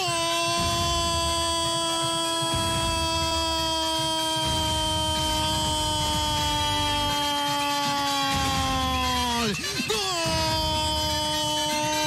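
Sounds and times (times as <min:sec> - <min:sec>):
commentator's long goal cry: 0:00.5 - 0:12.0.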